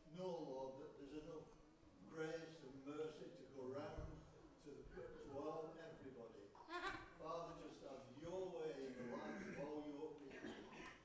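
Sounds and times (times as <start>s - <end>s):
faint man speaking: 0.0s - 11.0s.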